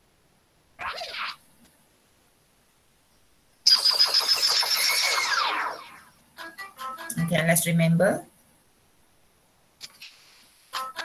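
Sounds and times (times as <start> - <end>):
gameshow jingle: 6.4 - 8.0.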